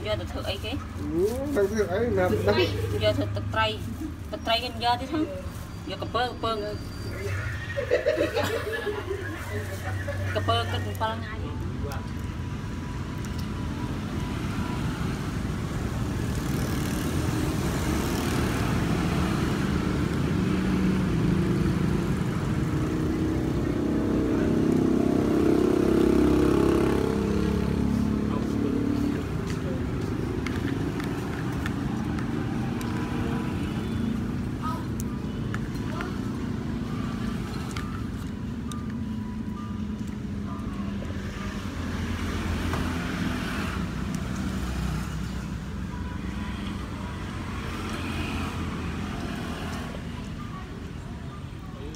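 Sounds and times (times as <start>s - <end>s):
road vehicles rumbling past: 0.0s - 51.9s.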